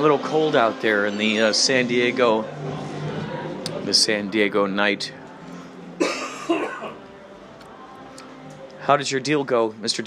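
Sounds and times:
person coughing: 6.0s - 7.0s.

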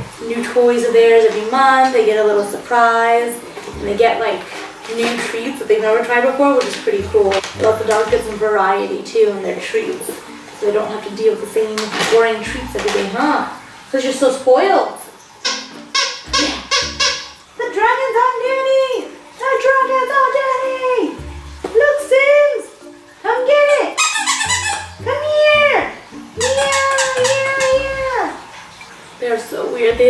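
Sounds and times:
squeaky dog toy squeaks: 15.4s - 17.4s, 23.7s - 25.0s, 26.4s - 28.1s.

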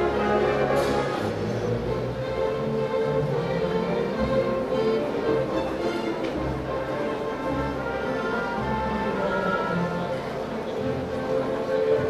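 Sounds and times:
orchestra playing classical music: 0.0s - 12.0s.

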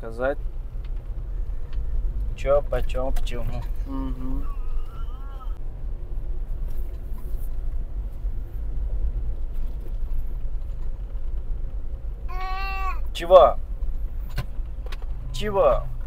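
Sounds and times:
car driving on gravel road: 0.0s - 16.0s.

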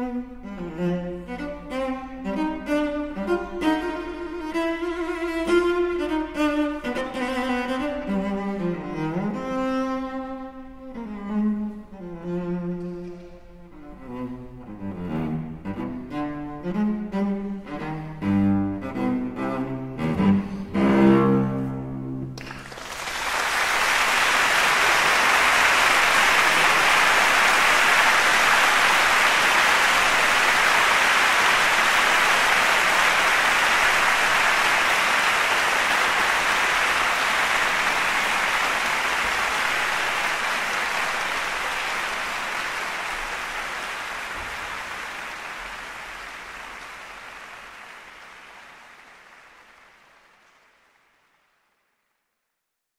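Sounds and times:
audience applauding: 22.4s - 51.8s.

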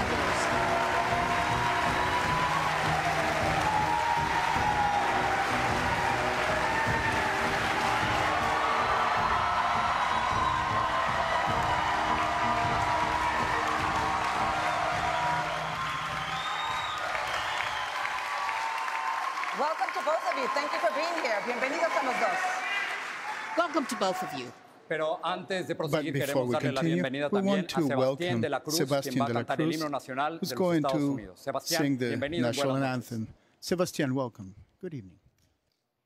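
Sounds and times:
loud theme music: 0.0s - 17.8s
audience applauding: 0.0s - 24.6s.

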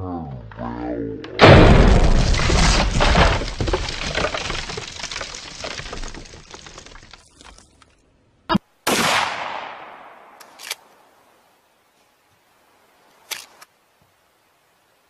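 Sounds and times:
loud crash-like bang: 1.4s - 4.8s.

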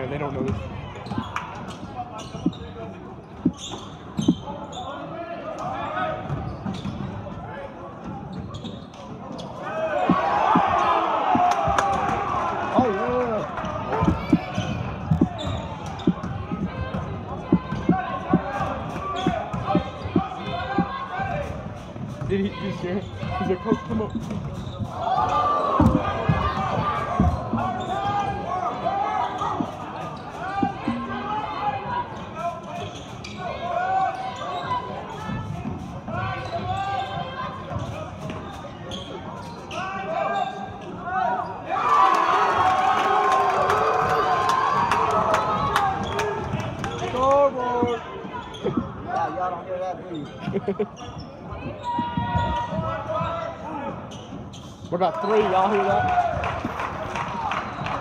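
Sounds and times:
voices and shouts of crowd: 9.3s - 58.0s
basketball bouncing on wood floor: 14.0s - 18.6s, 19.2s - 21.0s, 25.8s - 27.9s.

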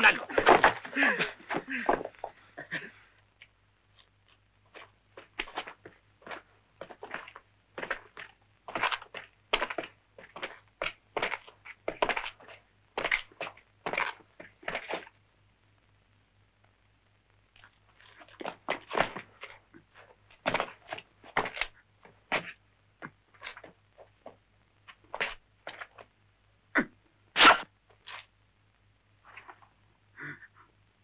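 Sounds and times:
person laughing: 2.6s - 3.0s.

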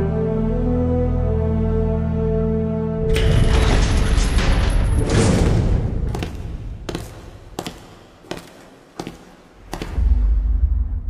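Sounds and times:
music: 0.0s - 6.1s, 9.9s - 11.0s.

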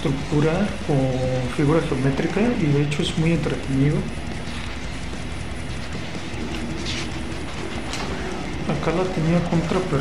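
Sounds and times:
low rumbling background noise: 0.0s - 10.0s
paper page rustling: 6.5s - 8.2s.

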